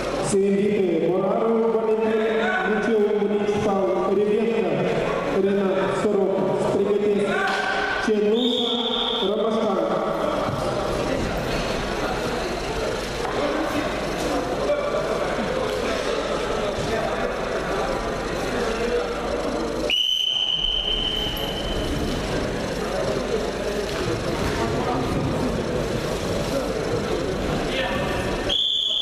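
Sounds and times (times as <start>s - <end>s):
referee's whistle blast: 8.4s - 9.4s, 19.9s - 21.8s, 28.5s - 29.0s.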